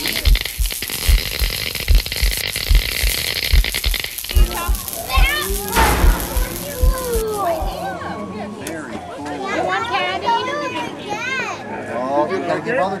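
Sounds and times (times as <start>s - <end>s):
hissing rattle: 0.0s - 7.8s
children's voices and squeals: 4.4s - 11.8s
deep thumps: 4.7s - 7.9s.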